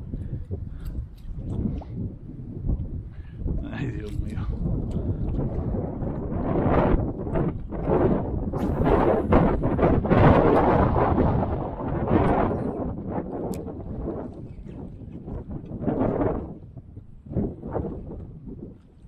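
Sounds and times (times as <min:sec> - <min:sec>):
wind gusting over microphone: 0:00.0 - 0:19.0.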